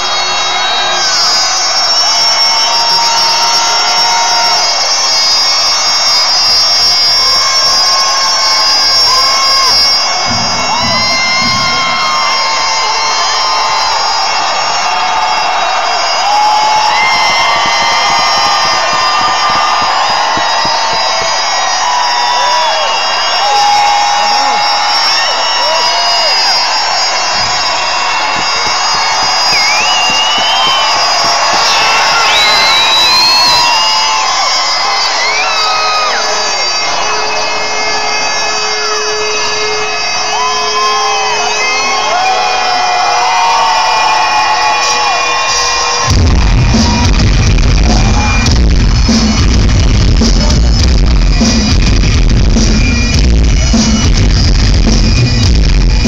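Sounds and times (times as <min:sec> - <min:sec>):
crowd cheering and shouting: 0:00.0 - 0:56.0.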